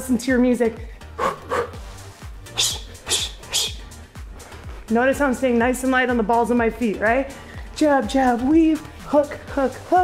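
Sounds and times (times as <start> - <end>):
background music with steady beat: 0.0 - 10.0
hissing breaths: 0.9 - 4.7.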